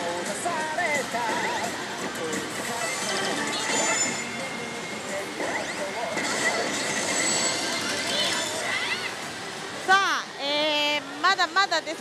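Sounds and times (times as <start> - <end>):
slot machines clattering: 0.1 - 9.4
electronic sound-effect tones: 2.7 - 9.0.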